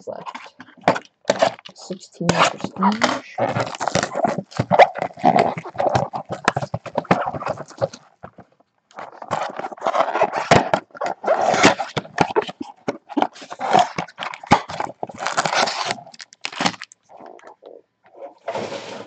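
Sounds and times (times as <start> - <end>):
cardboard box tearing and rustling: 2.3 - 8.0, 9.0 - 17.0.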